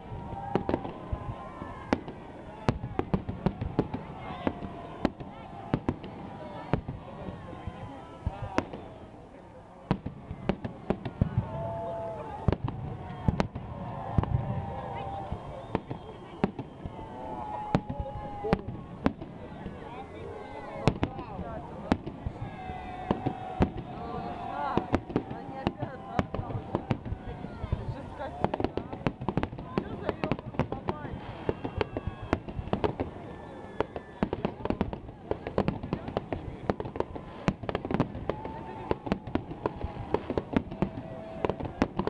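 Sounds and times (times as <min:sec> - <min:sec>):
fireworks bursting with sharp bangs: 0:00.0 - 0:42.0
fireworks crackling: 0:00.0 - 0:42.0.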